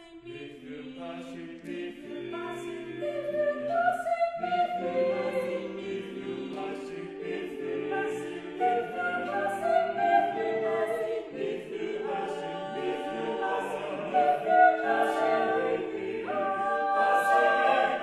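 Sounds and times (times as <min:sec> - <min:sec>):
a cappella vocal ensemble singing: 0:00.0 - 0:18.0.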